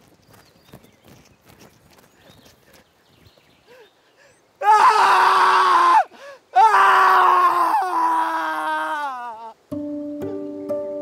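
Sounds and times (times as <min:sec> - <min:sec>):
young man screaming in anguish: 0:04.6 - 0:09.6
catch of breath: 0:06.1 - 0:06.4.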